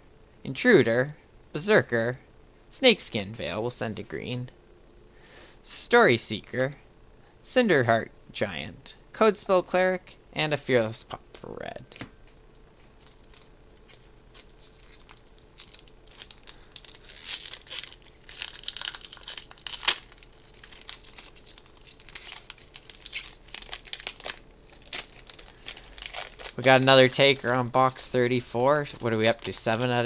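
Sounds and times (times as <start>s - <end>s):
foil wrapper crinkling and tearing: 12.9s - 30.0s.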